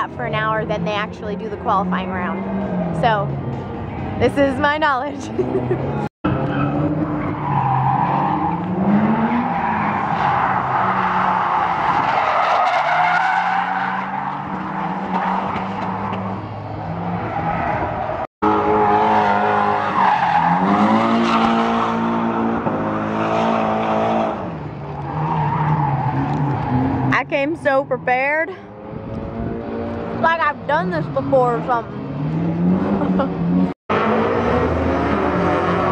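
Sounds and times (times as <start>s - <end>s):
car engines revving: 0.0s - 35.9s.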